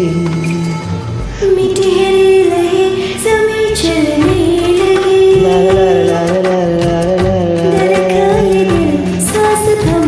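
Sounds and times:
karaoke backing track: 0.0s - 10.0s.

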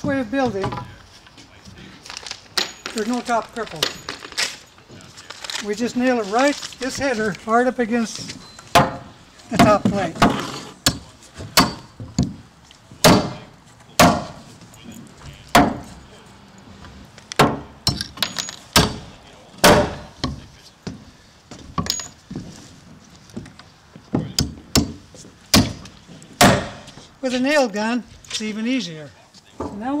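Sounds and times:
hammer driving nails into wood: 15.5s - 15.9s, 19.6s - 20.4s, 24.4s - 26.9s.

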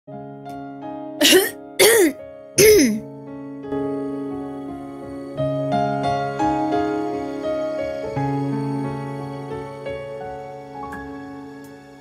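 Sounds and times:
woman coughing: 1.2s - 3.0s.

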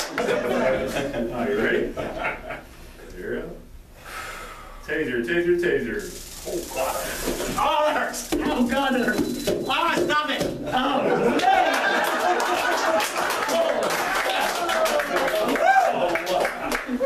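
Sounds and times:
people clapping: 11.3s - 17.0s.

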